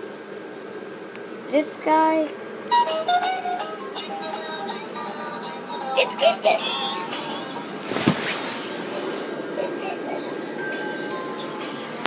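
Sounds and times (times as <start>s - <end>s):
toys playing tinny music and singing: 2.7s - 7.8s, 8.9s - 12.0s.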